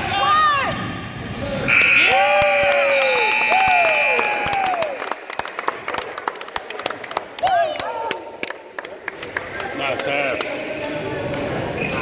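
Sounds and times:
referee's whistle long blast: 1.7s - 4.6s.

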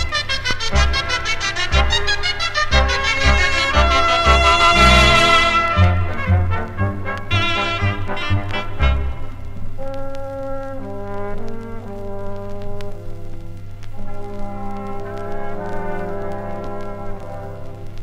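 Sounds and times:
wind band playing from vinyl: 0.0s - 18.0s.

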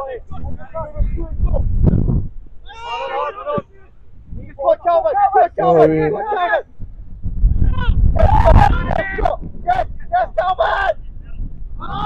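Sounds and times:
wind rumbling on microphone: 0.0s - 12.0s
men shouting: 2.6s - 4.0s, 4.8s - 6.6s.

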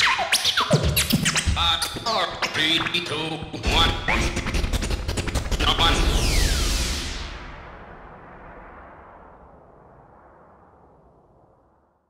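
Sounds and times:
loud hit with falling swoosh: 5.6s - 11.8s.

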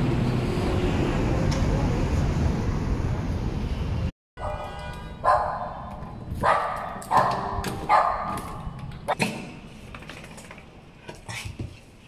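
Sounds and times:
small dog barking behind door: 5.2s - 8.6s.

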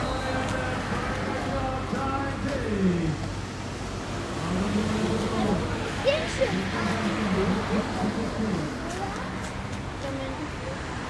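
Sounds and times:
outdoor background noise: 0.0s - 11.0s
engine revving: 4.0s - 8.9s.

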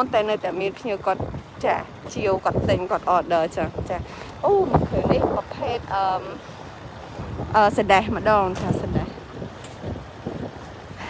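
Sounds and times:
person talking: 0.0s - 6.4s, 7.5s - 9.2s
wind buffeting microphone: 0.0s - 11.0s.

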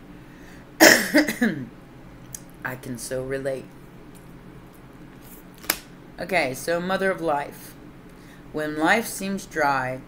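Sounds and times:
woman coughing: 0.8s - 1.7s.

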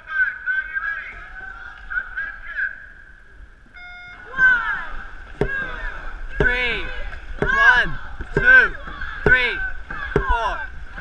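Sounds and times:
voices calling: 0.0s - 11.0s
crew shouting: 3.8s - 11.0s.

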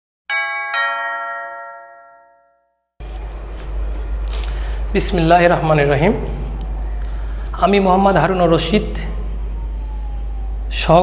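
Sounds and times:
two-note ding-dong chime: 0.3s - 2.8s.

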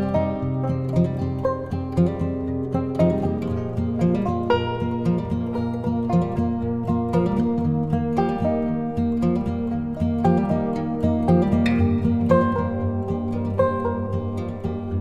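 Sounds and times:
plucked string music: 0.0s - 15.0s.

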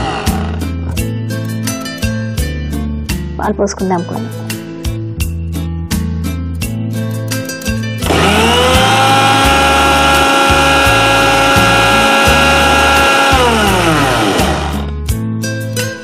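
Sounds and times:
mixer grinder motor whining: 0.0s - 0.7s, 8.0s - 14.9s.

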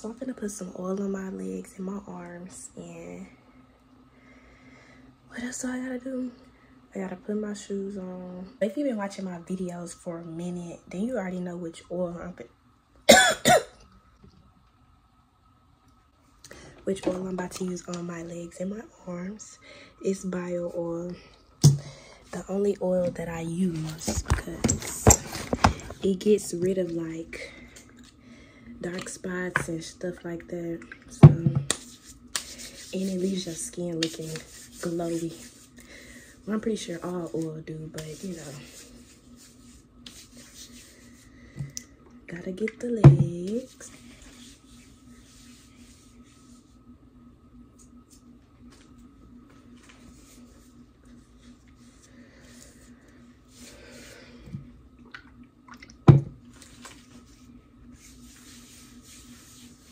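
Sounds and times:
woman coughing: 13.1s - 13.8s.

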